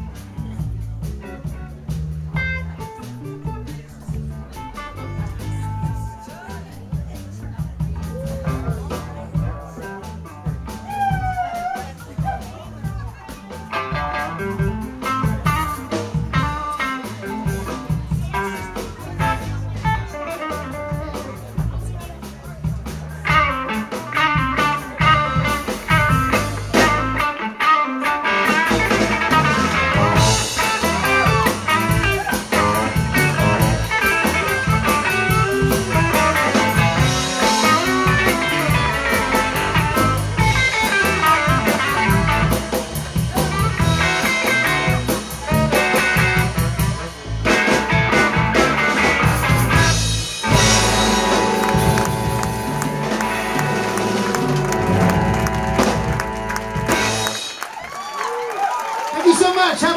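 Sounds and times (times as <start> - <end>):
blues band playing: 0.0 - 59.9.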